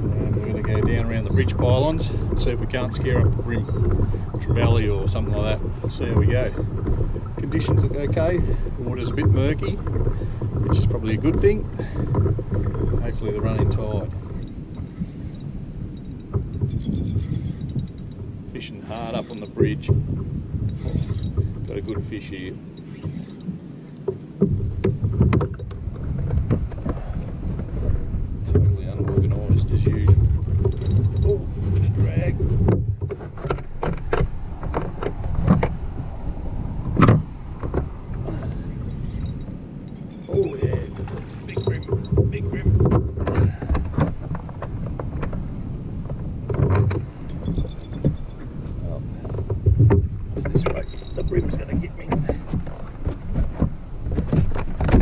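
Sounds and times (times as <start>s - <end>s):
low rumbling: 0.0s - 55.0s
high-pitched chirps: 14.4s - 18.2s, 38.9s - 41.0s, 47.3s - 48.4s.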